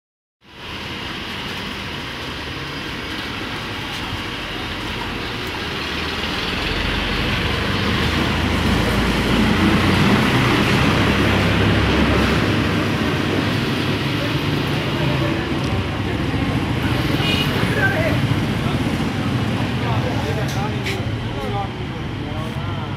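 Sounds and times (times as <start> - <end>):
road traffic noise: 0.4 - 22.9
low vehicle rumble: 0.5 - 22.9.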